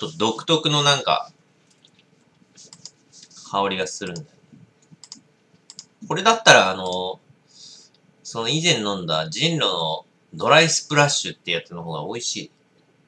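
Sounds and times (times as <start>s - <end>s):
person's voice: 0.0s - 1.3s
faint small clicks: 4.8s - 5.9s.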